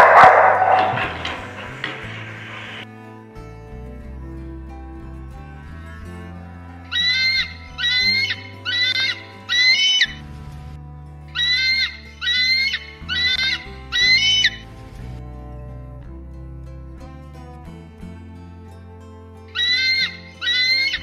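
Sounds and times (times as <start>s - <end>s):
eagle calling: 0.0s - 2.8s, 6.9s - 10.2s, 11.4s - 14.7s, 19.5s - 21.0s
background music: 0.0s - 21.0s.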